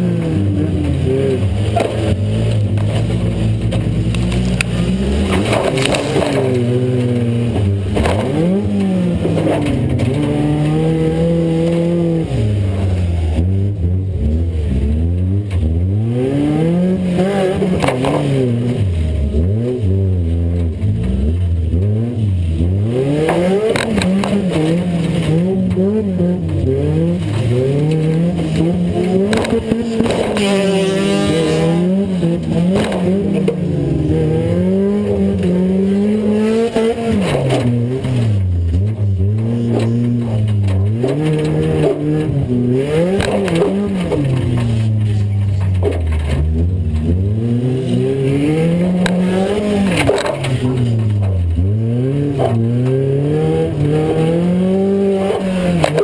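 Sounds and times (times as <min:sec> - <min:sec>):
race car engine revving: 0:00.0 - 0:56.0.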